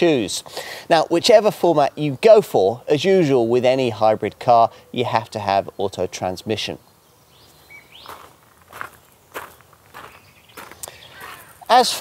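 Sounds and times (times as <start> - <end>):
footsteps on gravel: 7.8 - 12.0.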